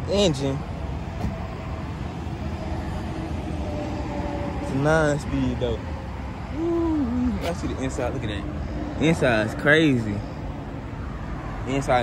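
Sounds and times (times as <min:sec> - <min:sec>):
outdoor rumble and hiss: 0:00.0 - 0:12.0.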